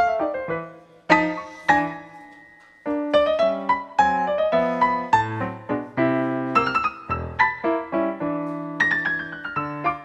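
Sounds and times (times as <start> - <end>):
solo piano tango: 0.0 - 10.0.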